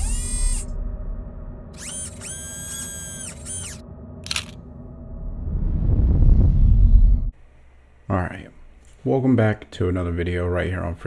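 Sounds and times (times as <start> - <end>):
whirring motor-like tone: 0.0 - 0.8, 1.7 - 3.8
low steady drone: 0.0 - 7.9.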